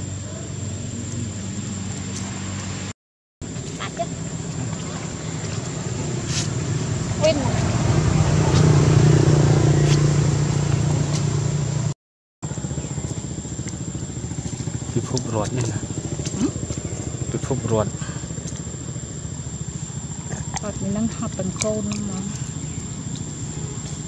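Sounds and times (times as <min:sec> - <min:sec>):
motor engine running: 0:00.0 - 0:24.0.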